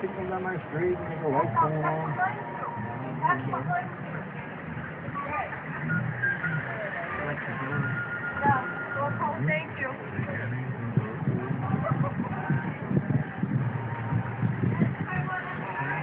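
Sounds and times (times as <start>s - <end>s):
background music: 0.0s - 16.0s
indistinct voices talking: 0.0s - 16.0s.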